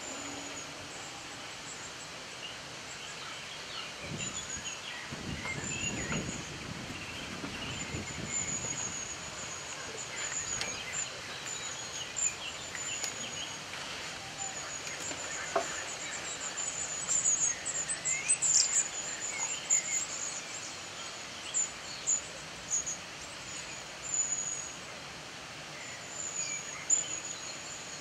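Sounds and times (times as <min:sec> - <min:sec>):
small birds chirping: 0:00.0 - 0:25.0.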